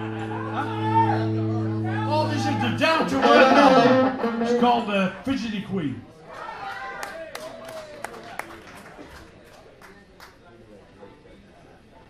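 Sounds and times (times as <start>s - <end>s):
live rock band playing: 0.0s - 5.2s.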